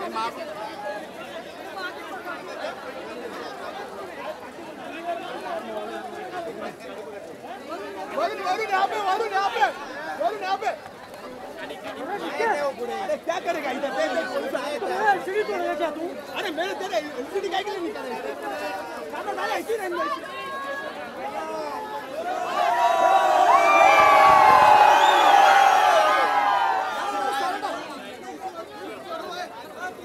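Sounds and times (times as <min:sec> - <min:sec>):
crowd chatter: 0:00.0 - 0:30.0.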